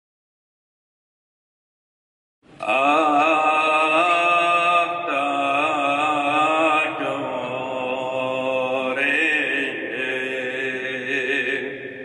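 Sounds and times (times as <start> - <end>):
liturgical chant singing: 2.6 - 12.0.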